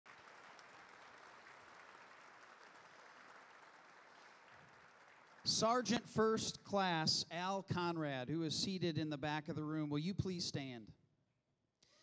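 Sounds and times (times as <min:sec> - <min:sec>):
audience applause: 0:00.1 - 0:05.8.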